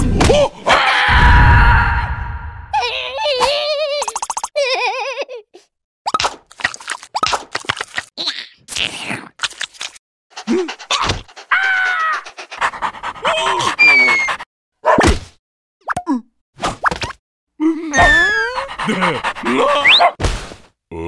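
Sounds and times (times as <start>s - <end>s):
squeaky gibberish cartoon voices: 2.8s - 4.8s, 10.4s - 12.6s, 13.2s - 14.4s, 17.9s - 20.2s.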